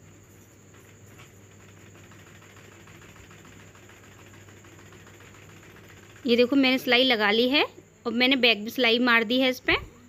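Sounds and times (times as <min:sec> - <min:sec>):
sewing machine stitching: 0:00.7 - 0:07.2.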